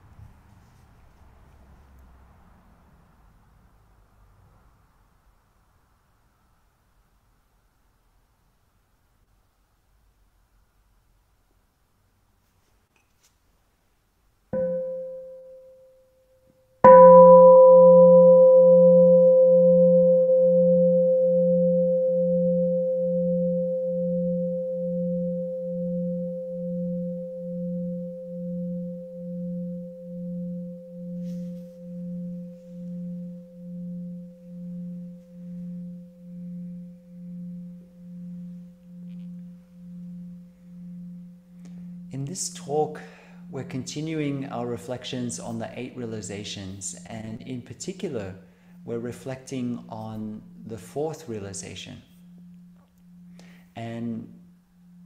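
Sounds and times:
meditation bowl bell ringing: 14.6s - 45.7s, 48.0s - 55.0s.

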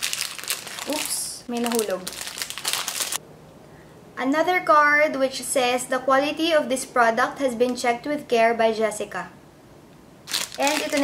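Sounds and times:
plastic wrapping crinkling: 0.0s - 3.2s, 10.2s - 11.0s.

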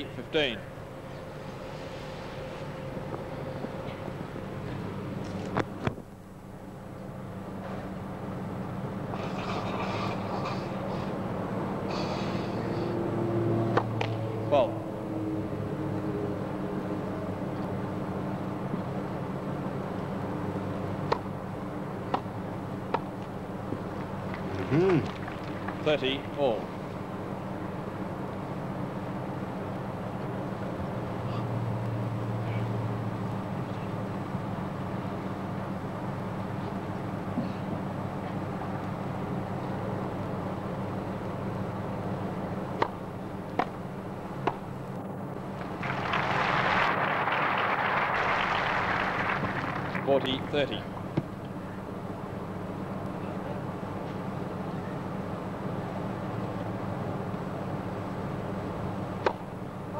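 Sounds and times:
steady low hum: 0.0s - 59.9s
crowd applause: 24.3s - 26.1s, 45.5s - 50.8s
crowd murmur: 24.4s - 26.0s
tennis ball hit by racquets: 42.8s - 43.8s, 59.2s - 59.5s.

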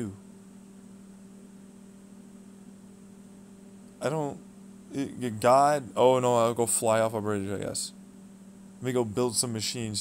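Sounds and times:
electrical hum: 0.0s - 10.0s
faint high-pitched whine: 0.0s - 10.0s.

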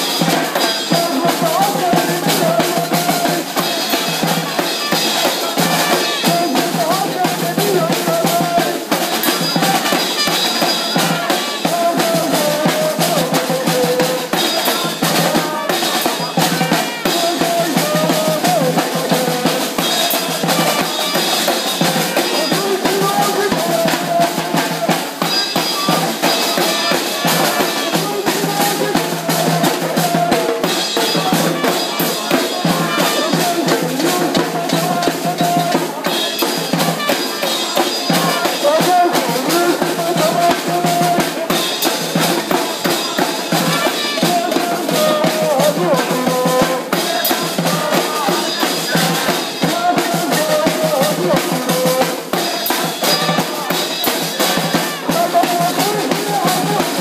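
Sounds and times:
person shouting through megaphone: 0.0s - 41.8s, 42.4s - 57.0s
snare drums marching rhythm: 0.0s - 57.0s.

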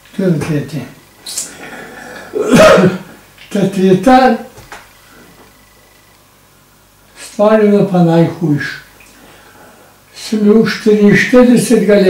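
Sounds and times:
man sneezing: 1.3s - 3.2s
sharp intake of breath: 9.2s - 10.1s.

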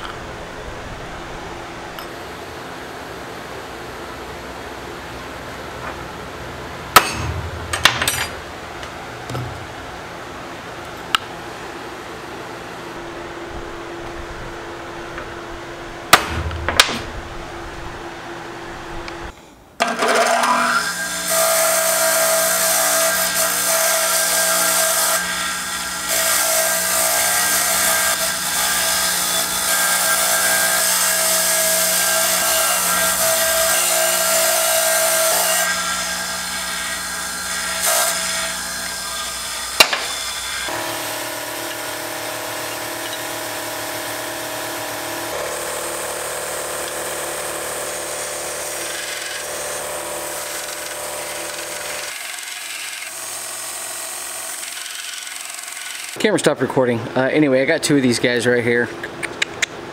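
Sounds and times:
shop machine sounds: 6.8s - 10.0s, 19.8s - 56.2s
electric bench buffer running: 35.9s - 52.2s.

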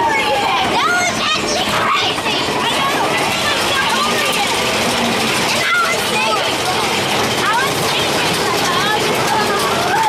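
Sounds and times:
riders' voices: 0.0s - 10.0s
roller coaster chain lift running: 0.0s - 10.0s.

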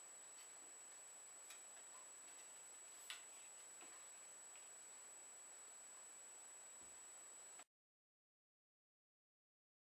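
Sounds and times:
faint high whine: 0.0s - 7.7s.

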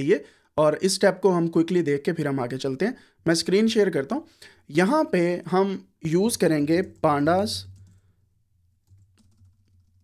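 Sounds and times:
keyboard keystrokes: 8.8s - 10.0s.

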